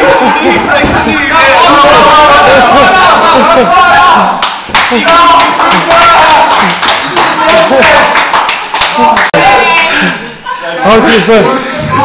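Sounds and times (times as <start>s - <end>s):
people clapping: 0.2s - 10.1s.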